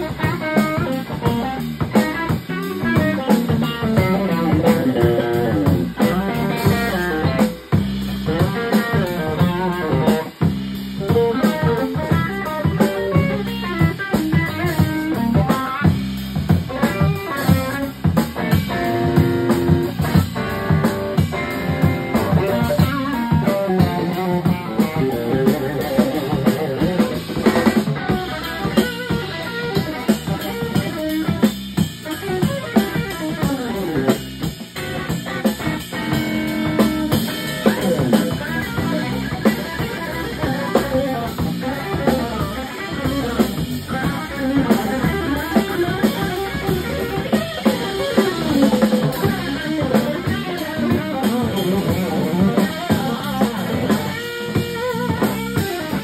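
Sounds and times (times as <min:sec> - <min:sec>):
electric guitar melodic lines: 0:00.0 - 0:56.0
funk band playing: 0:00.0 - 0:56.0.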